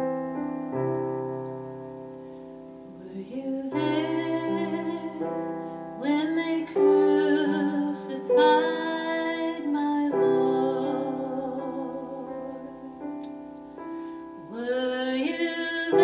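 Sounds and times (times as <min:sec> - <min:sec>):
piano chords: 0:00.0 - 0:16.0
woman singing slow melody: 0:02.9 - 0:16.0.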